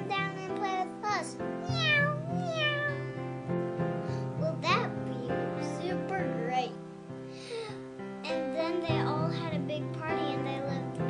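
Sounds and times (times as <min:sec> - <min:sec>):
child making meow calls: 0:00.0 - 0:03.3, 0:04.3 - 0:06.8
background music: 0:00.0 - 0:11.0.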